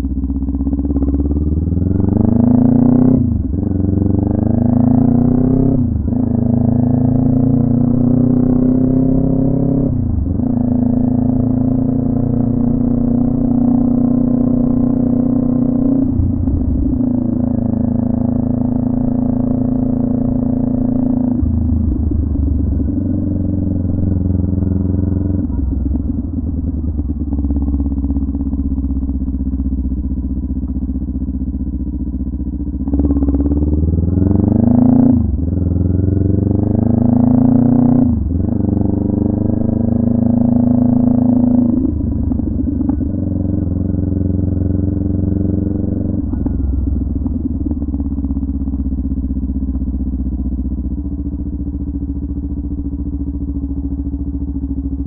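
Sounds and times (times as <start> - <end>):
motorcycle engine revving through gears: 0.0 - 55.0.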